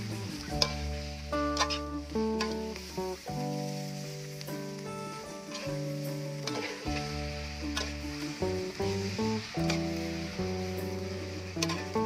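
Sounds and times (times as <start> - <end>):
metal spatula scraping a wok: 0.0 - 3.0, 5.4 - 12.0
instrumental background music: 0.0 - 12.0
steady sizzle: 0.0 - 12.0.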